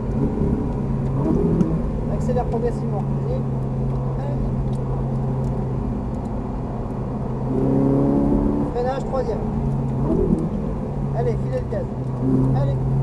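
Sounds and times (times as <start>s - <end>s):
car engine accelerating: 0.0s - 13.0s.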